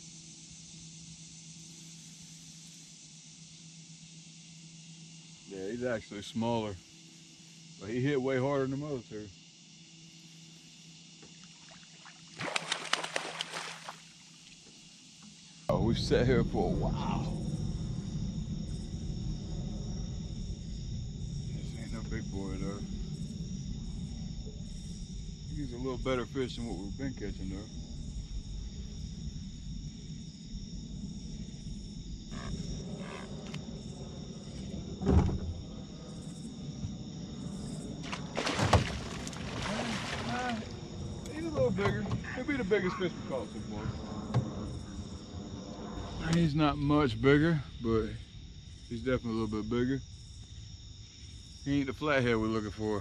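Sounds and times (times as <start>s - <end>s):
crickets chirping: 0.0s - 53.0s
fish splashing in water: 11.6s - 14.2s, 38.0s - 40.8s.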